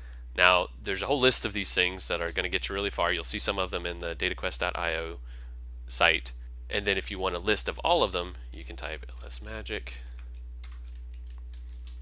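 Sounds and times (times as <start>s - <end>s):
low hum: 0.0s - 12.0s
computer keyboard clicks: 10.2s - 12.0s.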